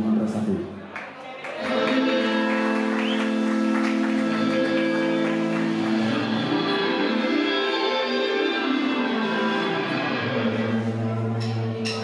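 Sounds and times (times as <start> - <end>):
keyboard chords: 1.6 - 12.0
ringing guitar chords: 1.7 - 12.0.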